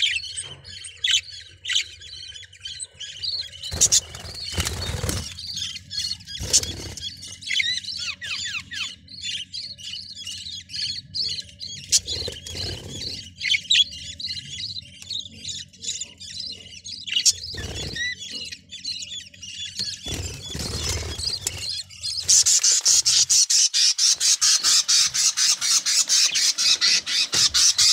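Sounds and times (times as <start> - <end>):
budgerigars chattering: 0.0 - 27.9.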